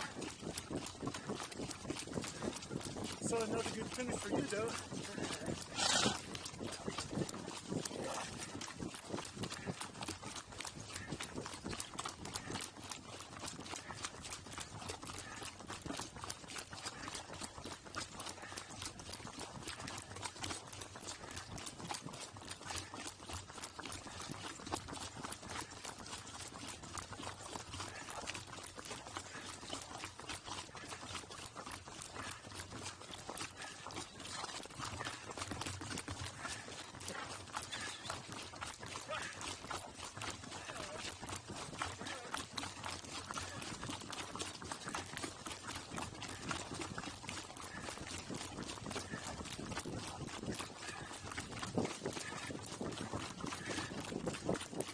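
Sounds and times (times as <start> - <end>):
hooves clopping on asphalt: 0.0 - 54.9.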